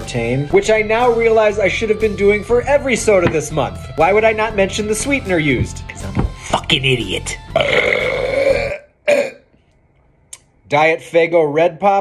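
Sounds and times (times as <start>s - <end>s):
man burping: 7.5s - 9.5s.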